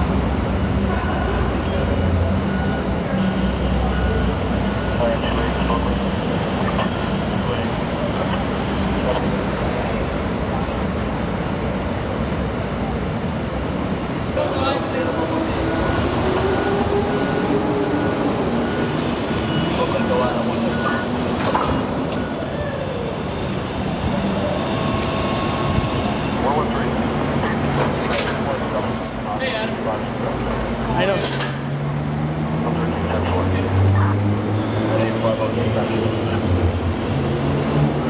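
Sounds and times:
highway traffic noise: 0.0 - 38.0
indistinct voices: 0.6 - 38.0.

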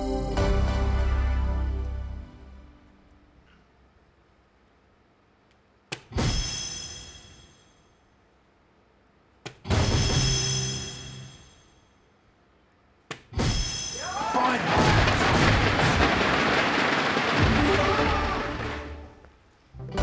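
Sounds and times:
crowd cheering and shouting: 14.0 - 19.0.

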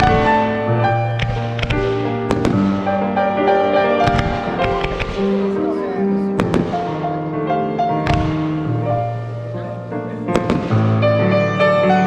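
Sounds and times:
fireworks bangs and cracks: 0.0 - 11.8
piano music: 0.0 - 12.0.

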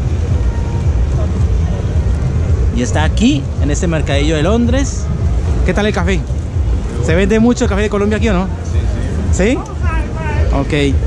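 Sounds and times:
faint distant voices: 0.0 - 11.0
low outdoor rumble: 0.0 - 11.0.

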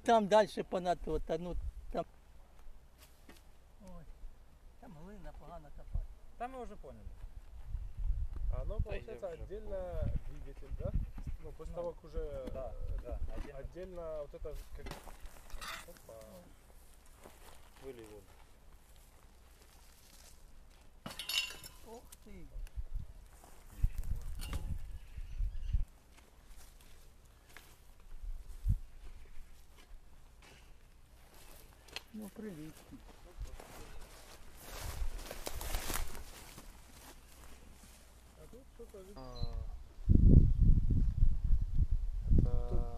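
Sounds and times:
footsteps in grass: 14.5 - 21.0, 21.8 - 25.0, 25.9 - 39.1
metallic clink and clatter: 21.1 - 21.9.

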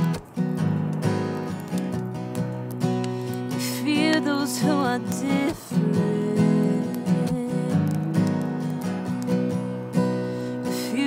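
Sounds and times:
acoustic guitar chords: 0.0 - 11.0
person singing: 3.4 - 9.1, 10.5 - 11.0.

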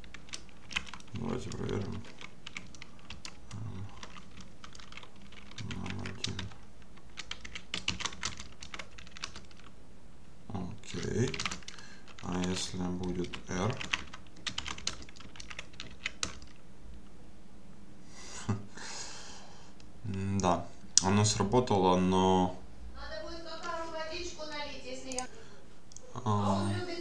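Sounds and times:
computer keyboard typing: 0.0 - 9.7, 11.0 - 16.6.

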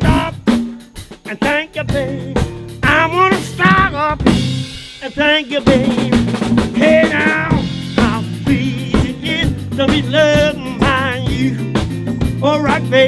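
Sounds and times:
person singing: 0.0 - 4.3, 5.0 - 13.0
drum kit with snare hits: 0.0 - 13.0
keyboard: 0.0 - 13.0.

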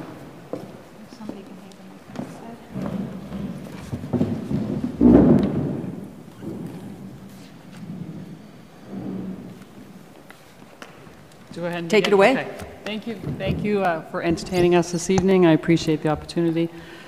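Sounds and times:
rustling and knocks: 2.1 - 15.4.

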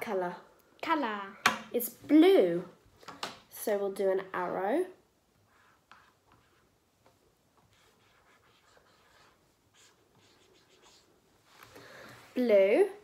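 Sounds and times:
marker scratching on whiteboard: 5.4 - 11.2.

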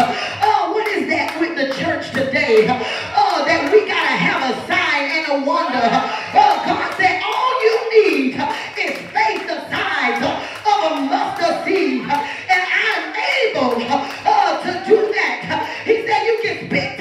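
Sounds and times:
woman preaching through microphone: 0.0 - 17.0.

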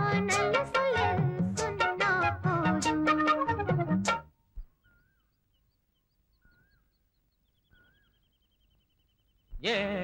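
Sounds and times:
faint birdsong: 4.3 - 10.0
bird twittering trill: 4.6 - 10.0.

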